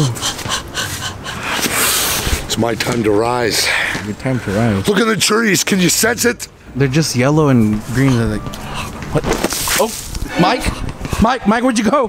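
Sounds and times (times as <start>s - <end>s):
man panting like a dog: 0.0s - 2.5s, 10.3s - 11.4s.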